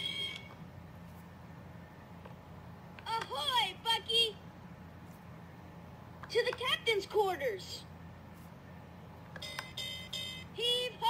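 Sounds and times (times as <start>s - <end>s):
toy electronic chime: 0.0s - 0.5s, 9.4s - 10.5s
low steady hum: 0.0s - 11.0s.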